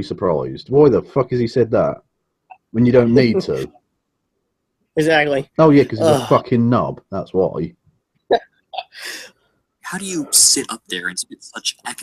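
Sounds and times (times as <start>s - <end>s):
person speaking: 0.0s - 3.7s, 5.0s - 7.7s, 8.8s - 9.3s, 9.9s - 12.0s.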